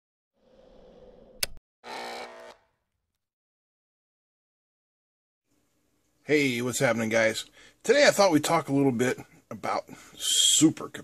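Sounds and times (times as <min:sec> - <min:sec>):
sharp click: 0:01.4 - 0:01.6.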